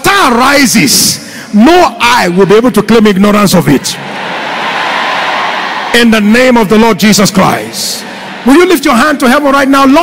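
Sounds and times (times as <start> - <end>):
crowd applauding and cheering: 4.0 - 6.8.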